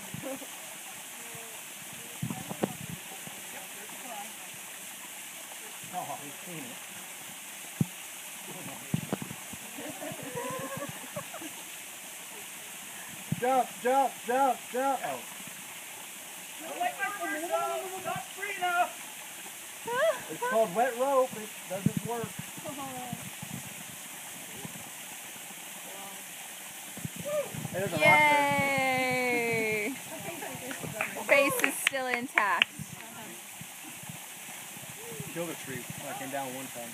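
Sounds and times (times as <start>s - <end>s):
waterfall rushing: 0.0s - 36.9s
person calling out: 27.2s - 30.0s.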